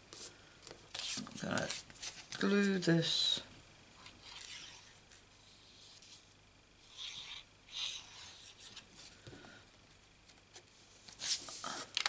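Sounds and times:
paper rustling and sliding: 0.9s - 2.4s, 11.1s - 12.0s.

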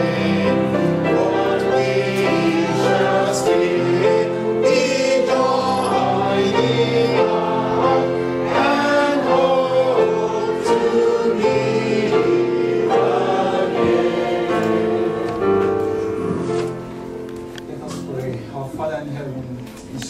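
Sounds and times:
congregation singing a hymn: 0.0s - 17.6s.

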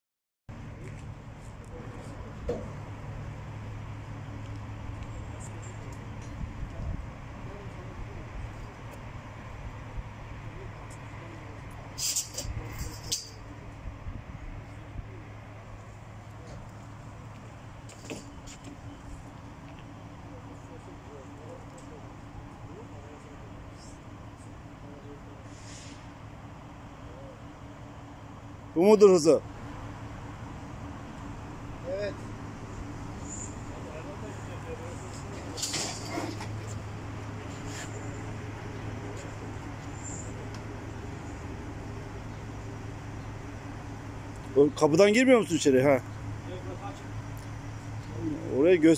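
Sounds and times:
low machine hum: 0.5s - 48.9s
short hissing: 25.4s - 26.2s.

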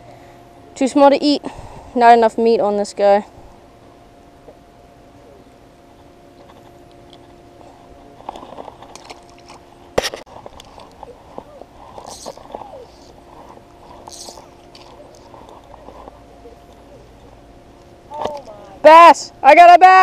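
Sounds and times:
rustling and scraping near camera: 6.4s - 17.3s.

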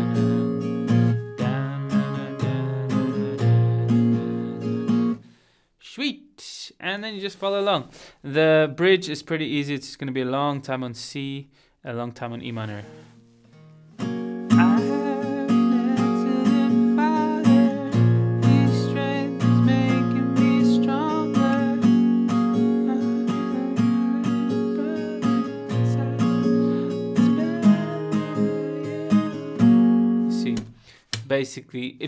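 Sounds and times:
acoustic guitar strumming: 0.0s - 5.3s, 12.7s - 30.9s.

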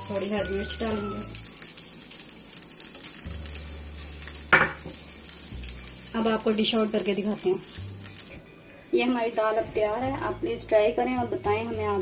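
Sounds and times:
hot oil sizzling and crackling: 0.0s - 8.4s.

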